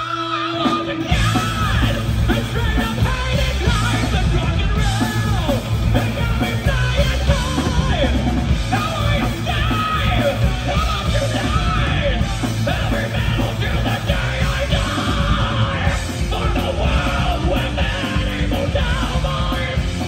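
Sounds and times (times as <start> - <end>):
metal band playing live: 0.0 - 20.0
person singing: 0.0 - 20.0.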